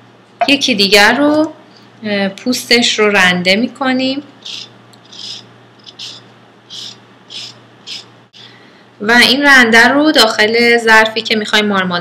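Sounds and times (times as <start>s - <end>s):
zester grating lemon rind: 4.4s - 8.1s.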